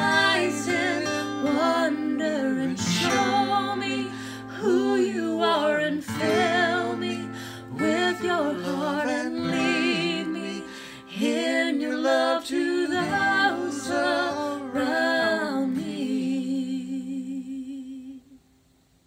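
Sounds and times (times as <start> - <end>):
woman and man singing: 0.0 - 18.4
acoustic guitar: 0.0 - 18.6.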